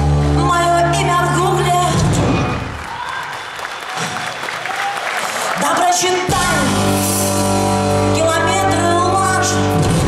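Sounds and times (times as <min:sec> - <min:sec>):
audience applauding and cheering: 0:02.3 - 0:06.4.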